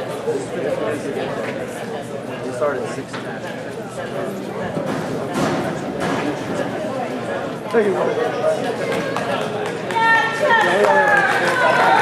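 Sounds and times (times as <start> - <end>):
many voices chattering: 0.0 - 12.0.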